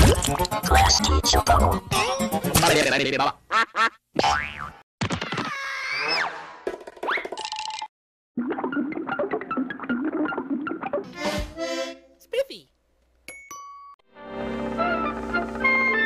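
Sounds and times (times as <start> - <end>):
busy jingle music: 13.3 - 14.0.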